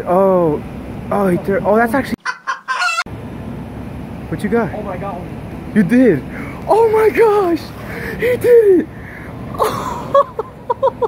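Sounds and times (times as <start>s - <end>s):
outdoor background noise: 0.0s - 11.0s
chicken clucking: 2.2s - 3.1s.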